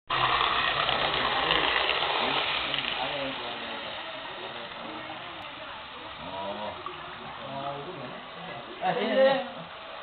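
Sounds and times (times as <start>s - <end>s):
model train rattling and whirring: 0.1s - 5.4s.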